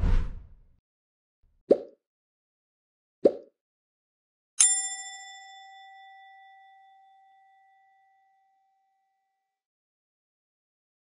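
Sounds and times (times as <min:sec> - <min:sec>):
bright bell ding: 0:04.6 - 0:08.4.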